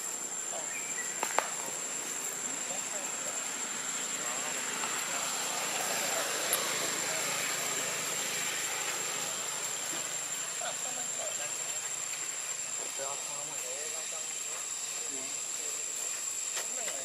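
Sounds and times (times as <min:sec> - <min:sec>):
distant engine noise: 0:00.0 - 0:17.0
high-pitched insect drone: 0:00.0 - 0:17.0.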